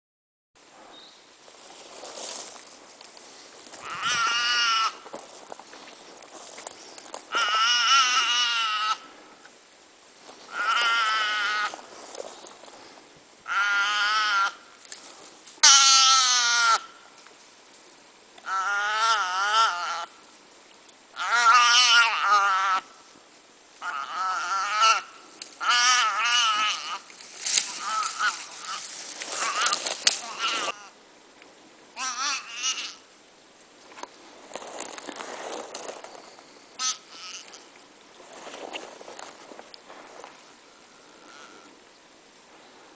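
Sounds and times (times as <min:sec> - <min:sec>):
calf bleating in distress: 0:03.8 - 0:05.0, 0:07.3 - 0:09.0, 0:10.5 - 0:11.8, 0:15.6 - 0:16.8, 0:23.8 - 0:27.1, 0:27.7 - 0:30.9, 0:32.0 - 0:33.0, 0:36.8 - 0:37.7, 0:41.2 - 0:41.7.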